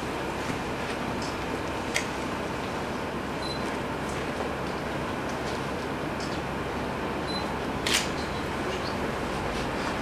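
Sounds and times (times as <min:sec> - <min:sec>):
sharp click: 0:07.8 - 0:08.2.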